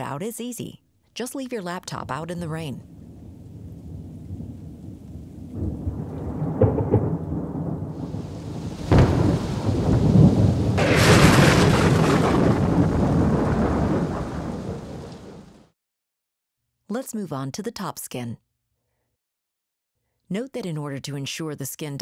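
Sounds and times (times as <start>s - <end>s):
rain: 2.8s - 15.7s
rolling thunder: 2.8s - 15.7s
sharp thunderclap: 2.8s - 15.7s.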